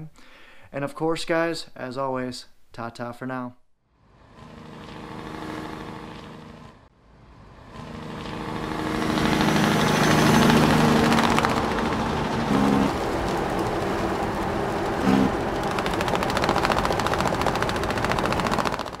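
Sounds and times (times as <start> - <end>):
tractor engine running: 4.3 - 6.9, 7.5 - 19.0
fast even clatter: 9.1 - 19.0.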